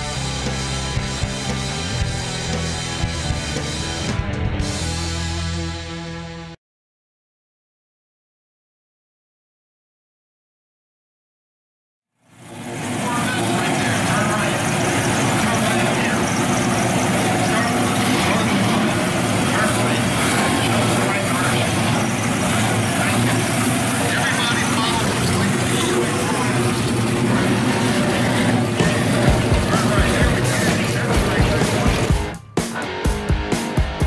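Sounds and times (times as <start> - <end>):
background voices: 12.8 - 32.3.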